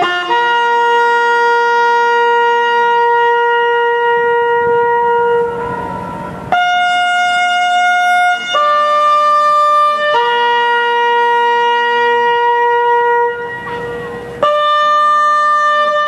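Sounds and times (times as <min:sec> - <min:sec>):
bugle playing long notes: 0:00.0 - 0:16.0.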